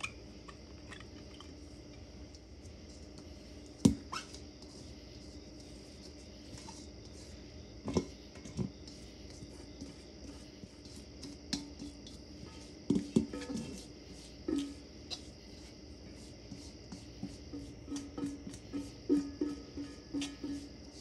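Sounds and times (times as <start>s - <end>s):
spatula scraping metal pan: 4.0s - 21.0s
spatula knocking ringing pan: 12.4s - 13.8s, 14.4s - 14.9s, 17.5s - 20.8s.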